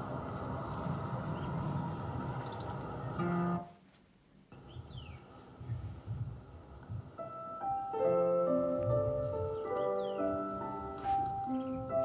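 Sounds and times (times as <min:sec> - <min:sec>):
outdoor sounds: 0:00.0 - 0:12.0
music: 0:03.2 - 0:03.7, 0:07.2 - 0:12.0.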